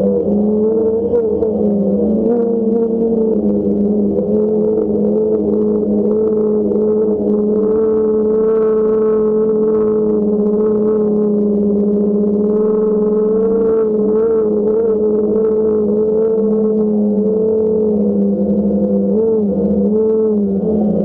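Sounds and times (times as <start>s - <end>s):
drone propellers humming: 0.0s - 21.0s.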